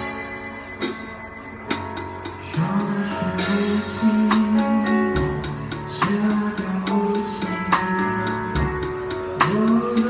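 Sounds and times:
drum kit playing: 0.0s - 10.0s
recorded song with guitar and bass: 0.0s - 10.0s.

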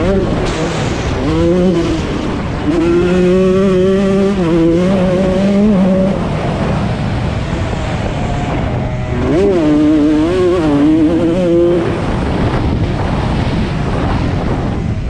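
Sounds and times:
motocross bike engine revving: 0.0s - 13.2s.

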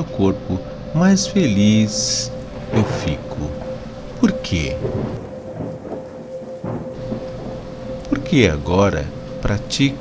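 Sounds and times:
rain: 0.0s - 10.0s
distant thunder rumbling: 1.8s - 10.0s.

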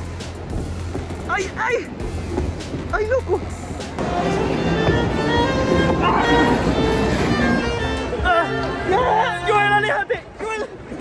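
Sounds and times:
bowed strings music: 2.0s - 10.1s.

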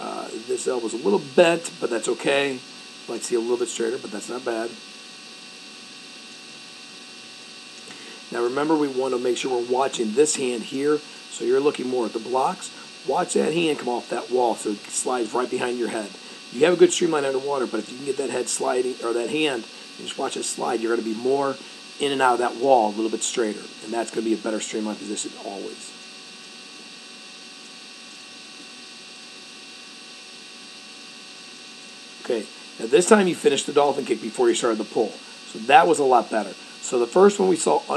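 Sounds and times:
electrical hum and hiss: 0.0s - 37.9s
faint steady tones: 0.0s - 37.9s.

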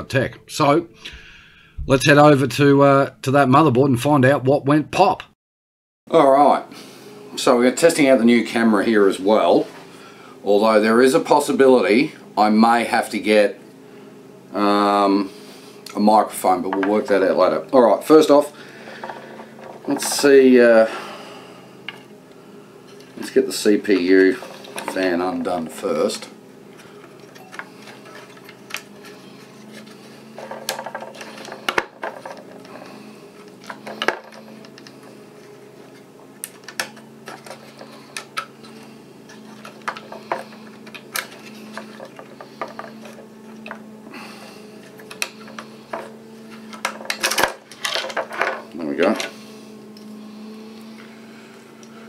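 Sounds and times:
steady low hum: 0.0s - 5.1s, 6.2s - 52.0s.

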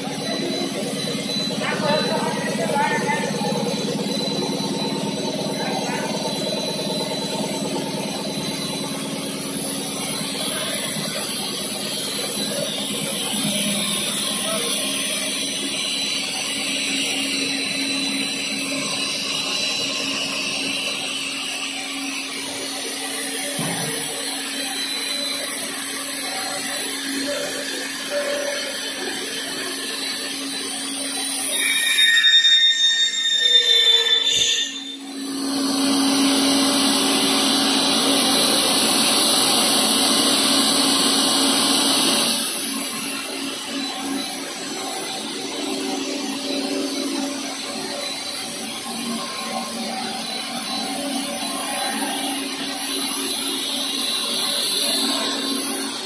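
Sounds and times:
machine hum and motor noise: 0.0s - 56.0s.

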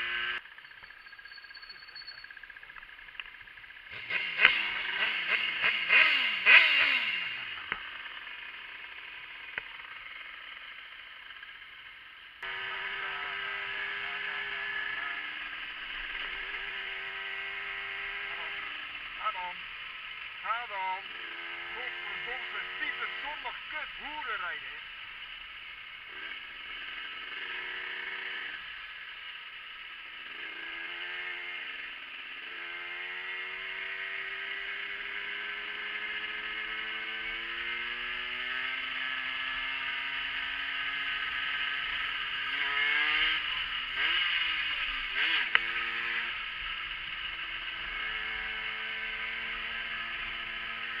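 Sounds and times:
motorcycle engine revving: 0.0s - 51.0s.

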